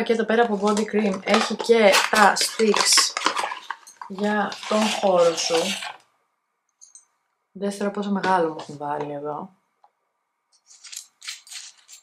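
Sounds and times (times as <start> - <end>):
metal screw cap scraping open: 1.3 - 6.0, 10.7 - 12.0.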